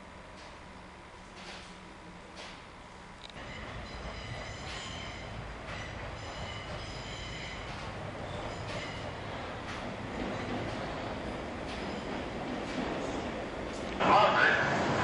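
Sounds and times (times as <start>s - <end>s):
electric train rumbling: 0.0s - 15.0s
metallic wheel squeals: 3.4s - 9.2s.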